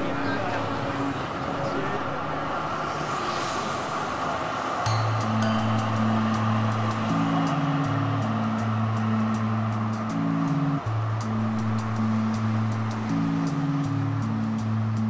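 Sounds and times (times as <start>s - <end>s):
city ambience: 0.0s - 15.0s
low held music notes: 4.9s - 15.0s
quick high ticking beat: 4.9s - 15.0s.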